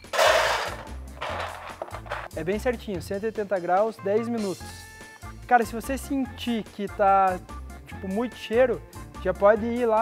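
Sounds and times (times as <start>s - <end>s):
nuts pushed around pan: 0.0s - 2.3s
nuts rattling into metal pan: 0.0s - 2.3s
background music: 0.0s - 10.0s.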